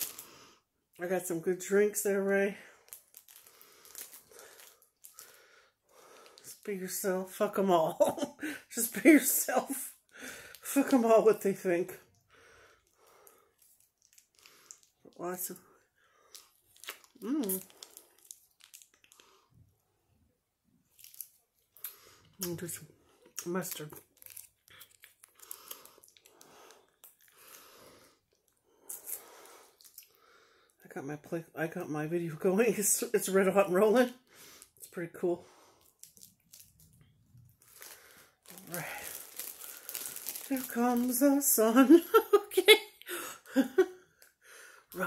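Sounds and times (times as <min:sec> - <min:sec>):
plastic wrapping crinkling: 0:00.0 - 0:00.3, 0:02.2 - 0:06.7, 0:13.0 - 0:15.6, 0:16.2 - 0:19.6, 0:20.8 - 0:27.7, 0:35.8 - 0:42.6
chewing with mouth clicks: 0:24.3 - 0:27.4, 0:29.8 - 0:30.2.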